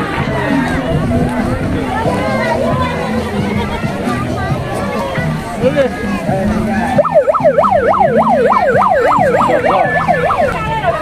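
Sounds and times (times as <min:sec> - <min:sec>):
crowd chatter: 0:00.0 - 0:11.0
siren wailing: 0:07.0 - 0:11.0.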